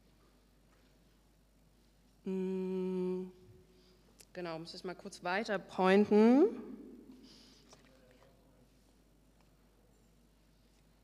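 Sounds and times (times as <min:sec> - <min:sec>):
woman humming: 0:02.2 - 0:03.6.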